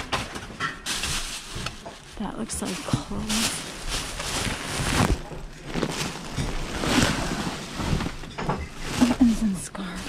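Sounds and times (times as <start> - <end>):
plastic bags crinkling and rustling: 0.0 - 10.0.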